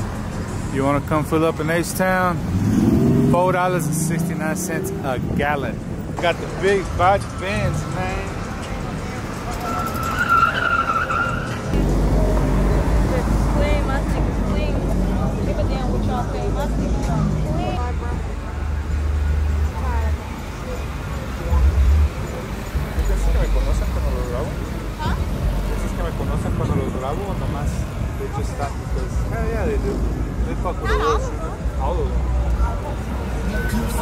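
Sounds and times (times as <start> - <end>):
cars passing: 0.0 - 34.0
bass-heavy hip-hop music: 11.2 - 34.0.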